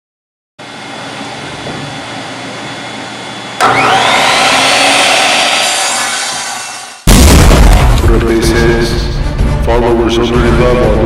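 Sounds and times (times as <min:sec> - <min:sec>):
panel saw motor whine: 0:00.6 - 0:07.0.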